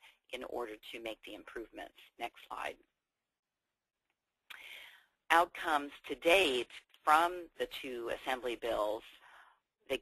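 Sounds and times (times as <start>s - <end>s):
person breathing in: 4.6s - 5.2s.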